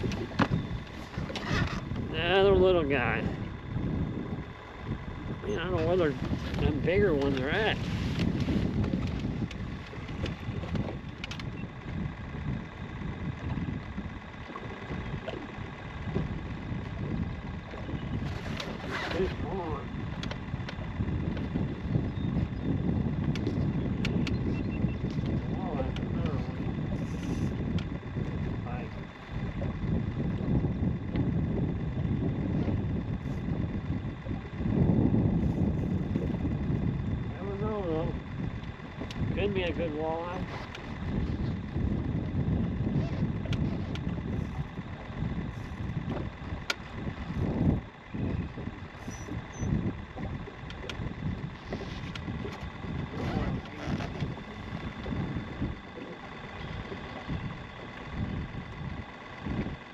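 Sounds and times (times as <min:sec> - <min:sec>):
faint high whine: 0:00.0 - 0:59.9
gusty wind on microphone: 0:00.0 - 0:59.9.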